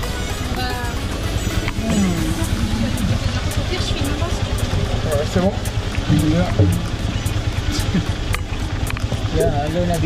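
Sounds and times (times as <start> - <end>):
motorcycle engine rumbling: 0.0 - 10.0.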